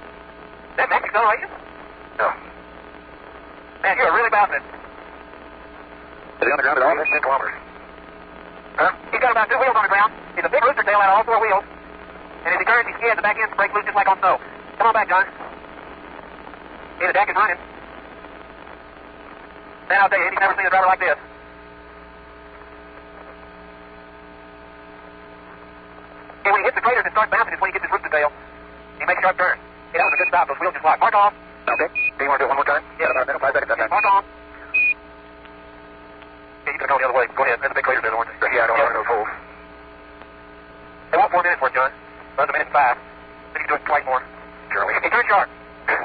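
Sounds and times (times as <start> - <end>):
radio hum and hiss: 0.0 - 46.0
man speaking over radio: 0.7 - 2.6, 3.8 - 5.0, 6.3 - 7.8, 8.7 - 11.8, 12.4 - 15.6, 16.9 - 17.8, 19.8 - 21.3, 26.3 - 34.7, 36.6 - 39.5, 41.1 - 46.0.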